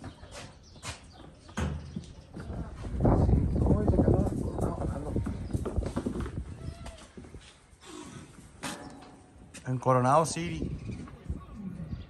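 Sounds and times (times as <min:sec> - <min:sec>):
hooves clattering on concrete: 0:00.0 - 0:11.4
goat kids bleating: 0:06.5 - 0:07.2.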